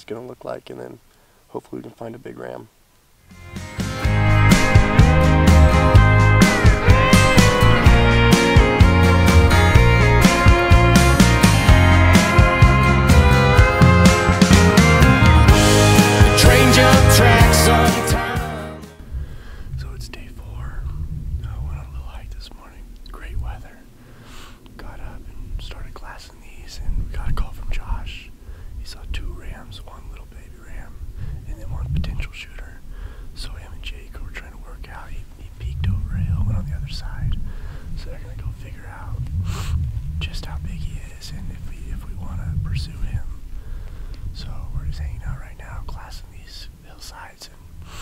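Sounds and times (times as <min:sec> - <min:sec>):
man speaking quietly: 0:19.8 - 0:23.8, 0:24.8 - 0:32.8, 0:33.4 - 0:37.4, 0:38.0 - 0:43.4, 0:44.4 - 0:47.6
wind buffeting microphone: 0:20.6 - 0:22.0, 0:35.6 - 0:45.9.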